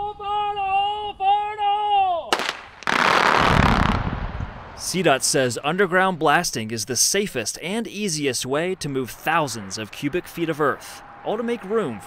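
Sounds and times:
sharp crack: 2.3s - 5.4s
deep explosion boom: 2.8s - 4.9s.

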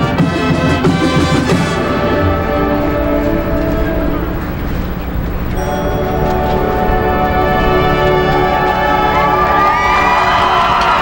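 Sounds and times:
marching band brass chord: 0.0s - 11.0s.

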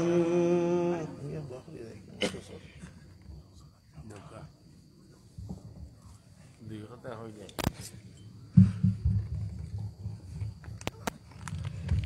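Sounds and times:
microphone handling rumble: 8.6s - 12.0s.

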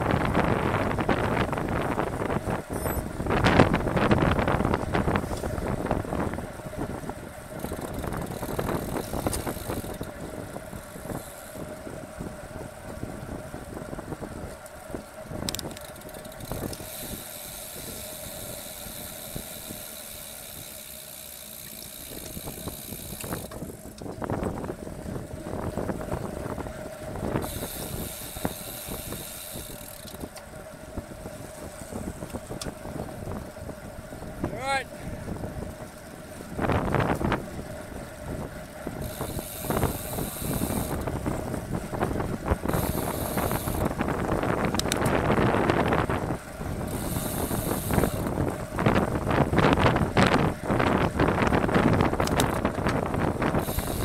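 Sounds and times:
wind rushing over microphone: 0.0s - 20.8s, 21.4s - 54.0s
bicycle tyre and road noise: 0.0s - 54.0s.

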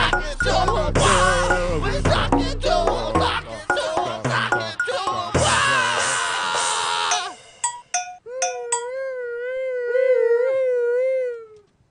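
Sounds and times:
noise rock music: 0.0s - 6.0s
slowly wavering wail: 8.2s - 11.7s.

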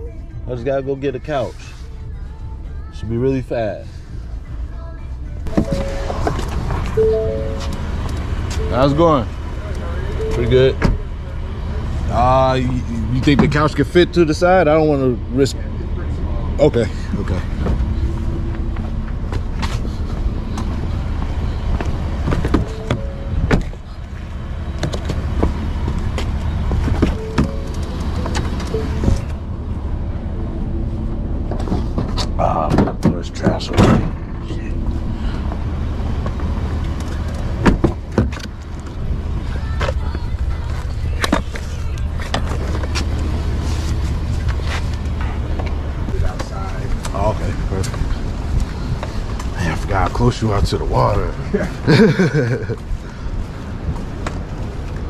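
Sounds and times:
truck engine rumbling: 0.0s - 55.0s
truck door clunks and knocks: 37.6s - 38.5s.

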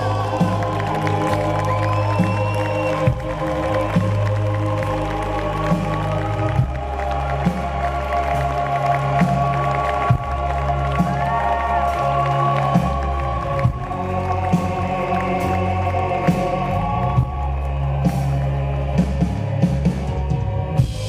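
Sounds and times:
deep bass line: 0.0s - 21.0s.

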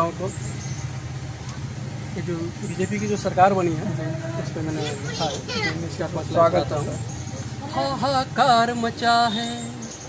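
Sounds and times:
steady low hum: 0.0s - 10.0s
man's voice: 2.2s - 7.1s.

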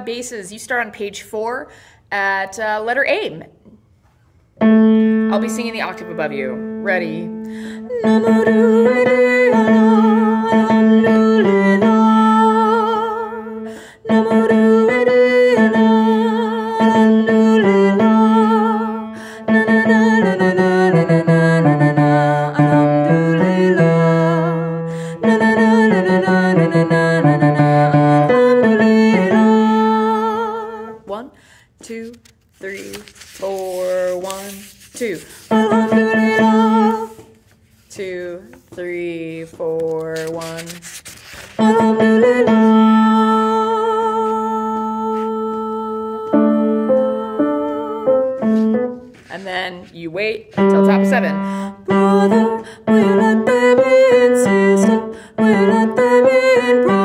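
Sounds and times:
instrumental accompaniment: 4.6s - 12.6s, 41.6s - 49.4s, 50.5s - 57.0s
woman singing with vibrato: 4.6s - 40.8s, 41.5s - 57.0s.

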